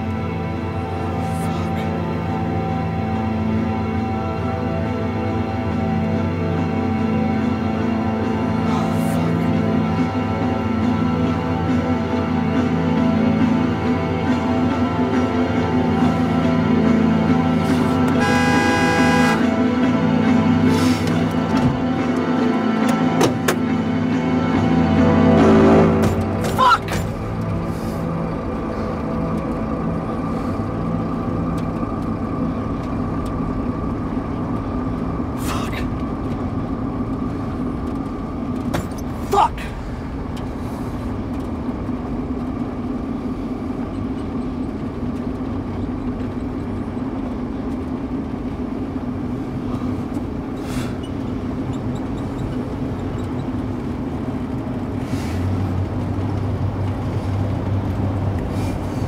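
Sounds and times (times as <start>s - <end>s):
vehicle engine and road drone: 0.0s - 59.0s.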